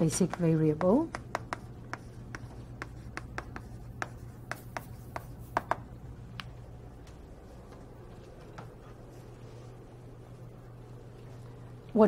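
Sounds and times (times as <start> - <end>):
low room hum: 0.0 - 12.0
chalk tapping on blackboard: 0.3 - 5.9.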